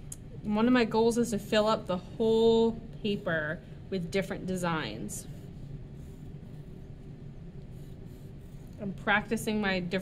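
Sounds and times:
low room hum: 0.0 - 10.0
pencil scratching on paper: 4.6 - 9.6.

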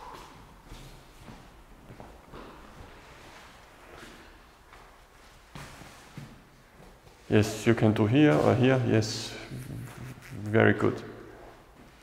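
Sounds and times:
scuffs and rustles on foam mat: 2.8 - 7.3.

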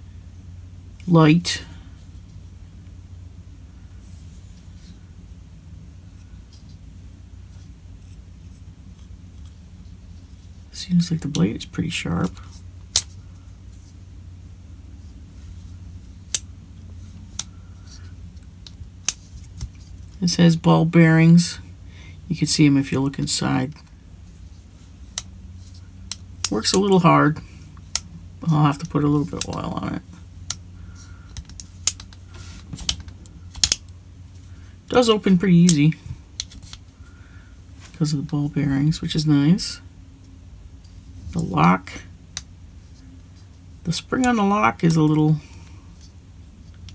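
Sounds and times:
steady low hum: 0.0 - 46.9.

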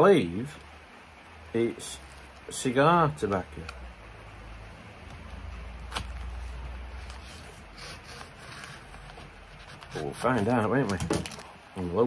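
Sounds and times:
faint paper rustling: 1.8 - 2.6, 5.0 - 11.9.

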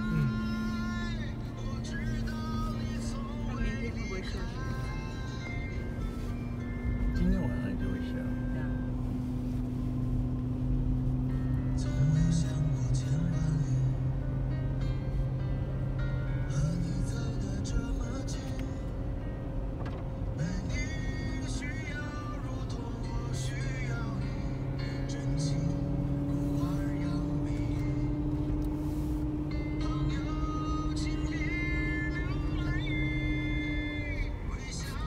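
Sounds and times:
music with singing voice: 0.0 - 8.9, 11.5 - 35.0
car engine and road drone: 0.0 - 35.0.

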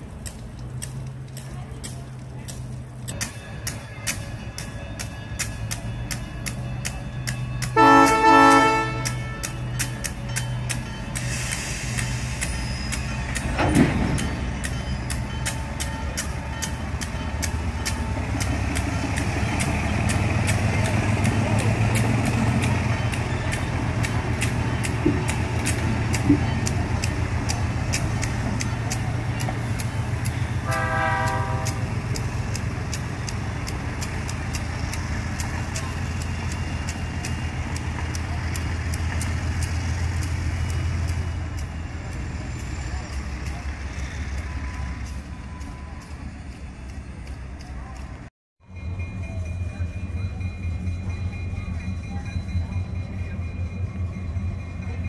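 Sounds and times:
diesel locomotives rumbling: 0.0 - 55.0
wheels clicking over rail joints: 0.0 - 55.0
locomotive horn toot: 7.6 - 9.7, 30.5 - 32.0.

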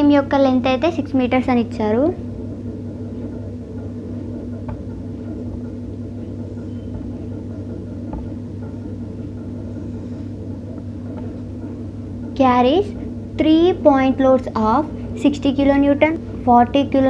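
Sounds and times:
low room hum: 0.0 - 17.0.

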